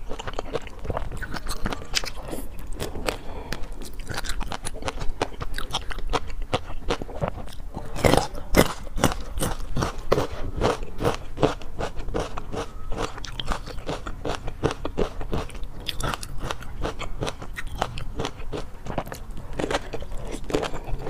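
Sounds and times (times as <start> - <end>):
chewing with crackling pops: 0.0 - 21.0.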